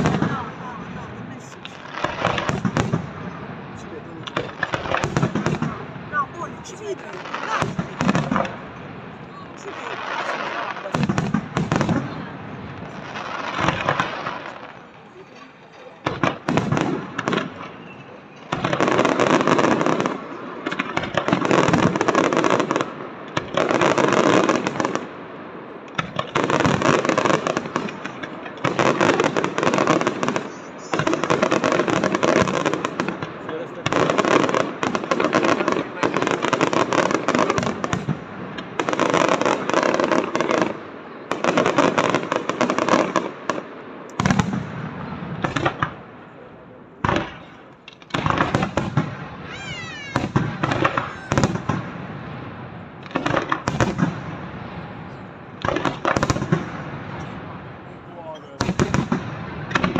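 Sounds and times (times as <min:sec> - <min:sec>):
fireworks bangs and crackle: 0:00.0 - 0:59.9.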